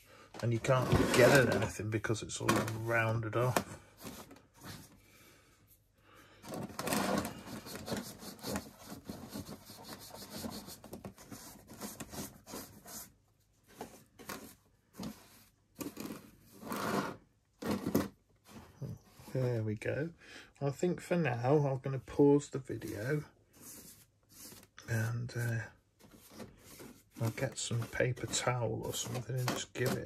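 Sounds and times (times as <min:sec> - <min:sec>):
brush scrubbing plastic: 0:06.9 - 0:13.1, 0:22.8 - 0:30.0.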